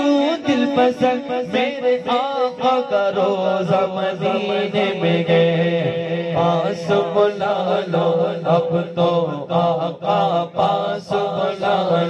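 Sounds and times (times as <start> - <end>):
chanted vocal drone: 0.0 - 12.0
man singing into a microphone: 0.0 - 12.0.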